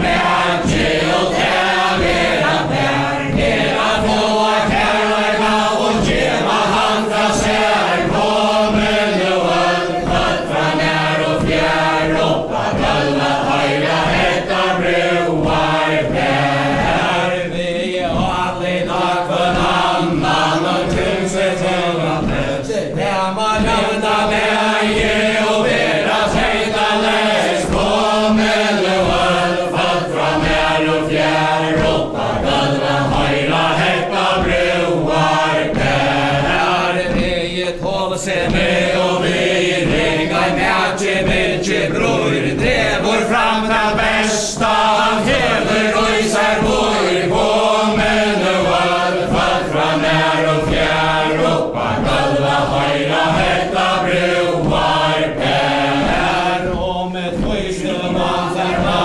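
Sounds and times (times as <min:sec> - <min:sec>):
feet stamping in rhythm: 0:00.0 - 0:59.0
group singing without instruments: 0:00.0 - 0:59.0.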